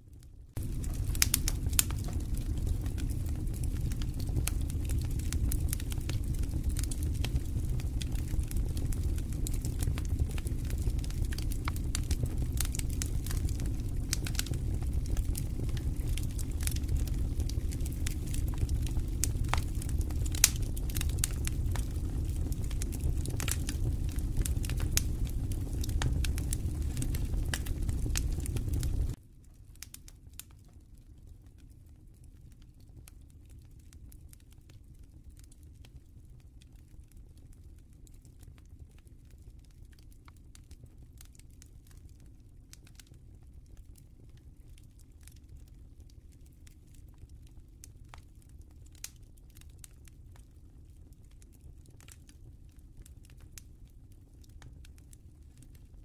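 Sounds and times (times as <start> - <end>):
crackles and clicks: 0.2 - 56.0
steady low rumble: 0.6 - 29.2.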